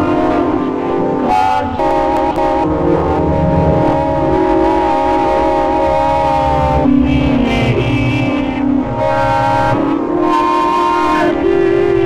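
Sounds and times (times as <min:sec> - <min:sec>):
sustained synth chord: 0:00.0 - 0:12.0
horn-like sound: 0:01.2 - 0:12.0
pulsing bass: 0:01.6 - 0:09.9.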